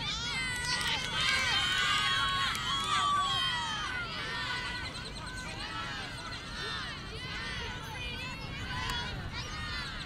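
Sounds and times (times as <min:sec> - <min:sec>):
women shouting and cheering: 0:00.0 - 0:10.0.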